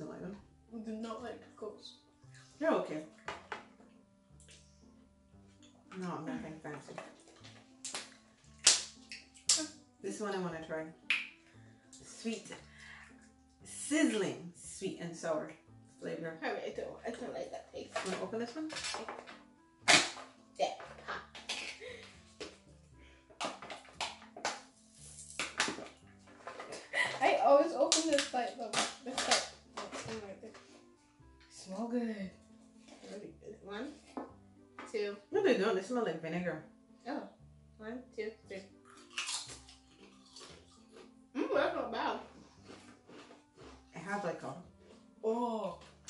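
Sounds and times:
background music with low notes: 0:00.0 - 0:46.0
snack can lid crinkling: 0:18.7 - 0:21.8, 0:23.4 - 0:26.8, 0:27.9 - 0:30.1
potato chips crunching: 0:38.8 - 0:41.1, 0:42.6 - 0:43.9.

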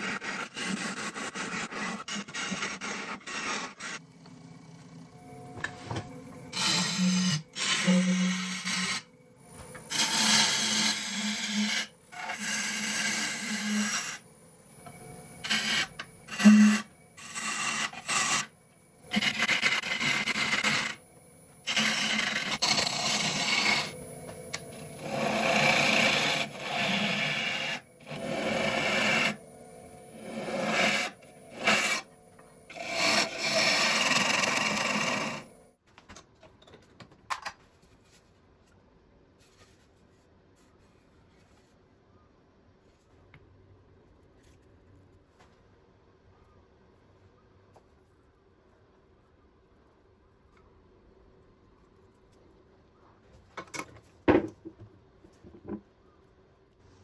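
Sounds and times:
lathe tool hissing scrape: 0:09.9 - 0:14.2, 0:15.4 - 0:18.5, 0:21.6 - 0:24.0, 0:24.6 - 0:32.1, 0:32.7 - 0:35.6.

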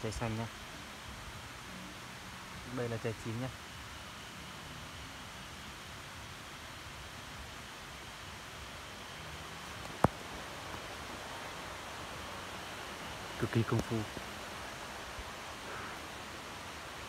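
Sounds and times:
forest ambience hiss: 0:00.0 - 0:17.0.

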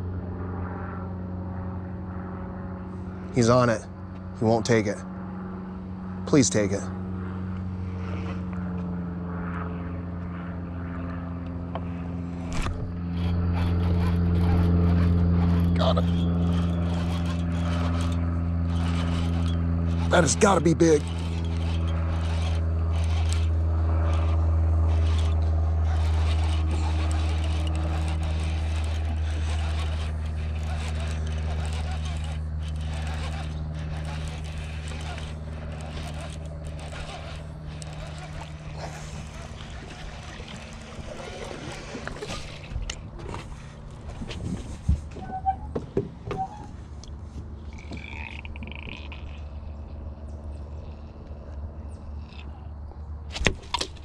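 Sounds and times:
motor engine droning: 0:00.0 - 0:54.0.

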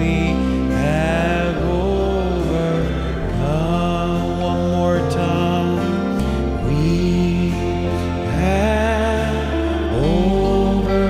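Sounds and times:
instrumental accompaniment: 0:00.0 - 0:11.0
man singing a hymn: 0:00.0 - 0:11.0.

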